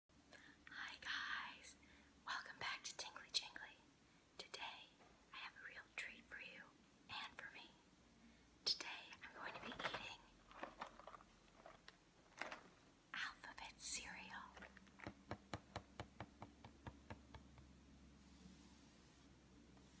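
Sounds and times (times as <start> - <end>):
woman whispering: 0.6 - 3.8, 4.4 - 7.8, 8.6 - 10.4, 13.1 - 14.7.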